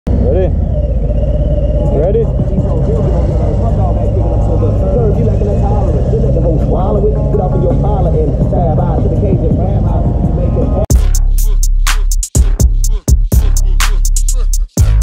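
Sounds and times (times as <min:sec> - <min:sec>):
voices: 0:00.1 - 0:10.9
motorcycle engines idling: 0:00.2 - 0:09.9
music: 0:01.9 - 0:15.0.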